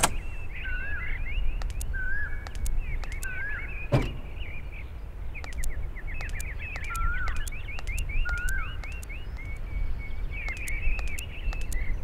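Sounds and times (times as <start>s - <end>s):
sharp clicks: 0.0s - 0.3s, 1.5s - 4.2s, 5.4s - 9.7s, 10.3s - 12.0s
birds chirping: 0.0s - 12.0s.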